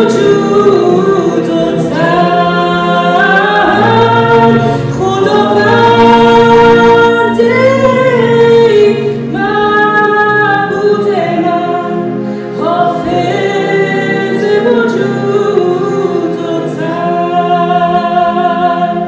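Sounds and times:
stage piano chords: 0:00.0 - 0:19.0
woman singing worship song: 0:00.0 - 0:19.0.

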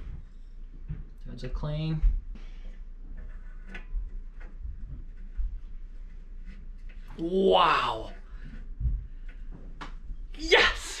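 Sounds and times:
faint metallic ticks and scrapes: 0:02.3 - 0:07.1.

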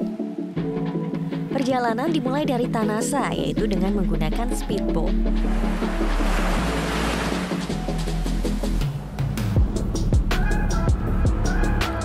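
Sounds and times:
background music: 0:00.0 - 0:12.0
sea waves rushing: 0:05.2 - 0:09.2.

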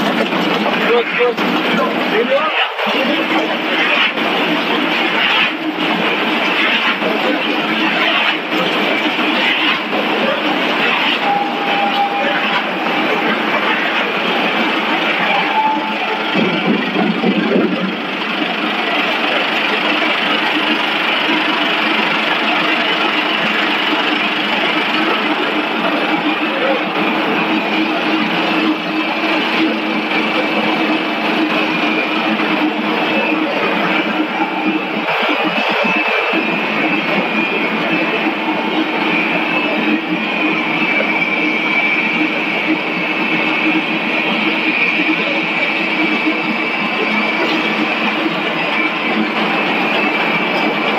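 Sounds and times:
factory machinery running: 0:00.0 - 0:50.9.

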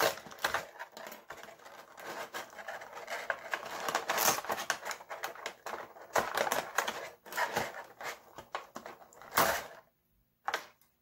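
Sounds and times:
plastic packaging crinkling: 0:00.0 - 0:09.8.

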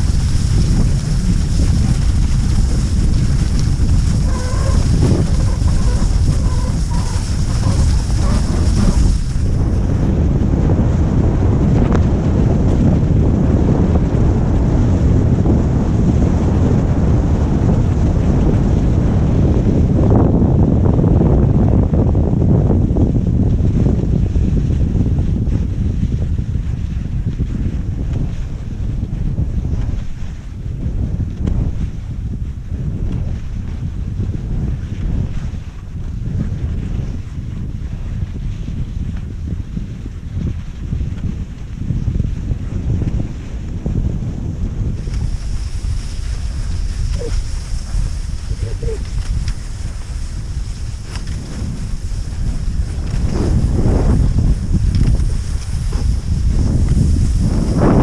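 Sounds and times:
skis hissing on snow: 0:00.0 - 0:10.0, 0:44.9 - 0:58.0
wind rushing over microphone: 0:00.0 - 0:58.0.

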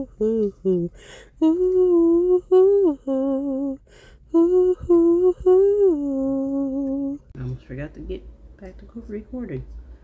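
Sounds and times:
person humming: 0:00.0 - 0:07.3.

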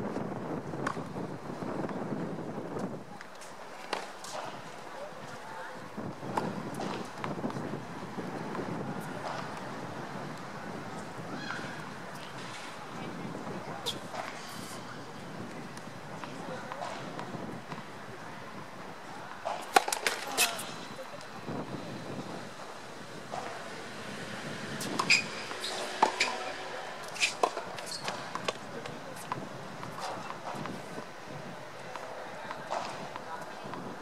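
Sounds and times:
faint background voices: 0:02.8 - 0:34.0
tennis ball pocks: 0:19.4 - 0:20.7.

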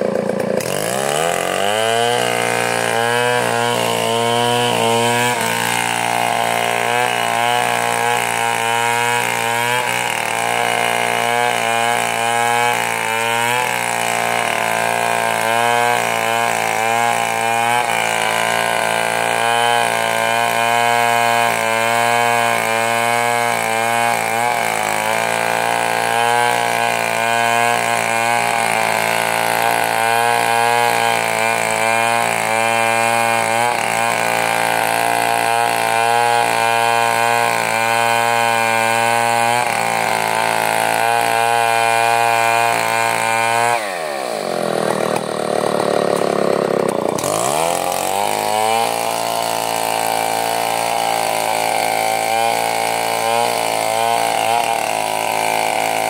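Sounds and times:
chainsaw cutting through log: 0:00.0 - 0:56.0.

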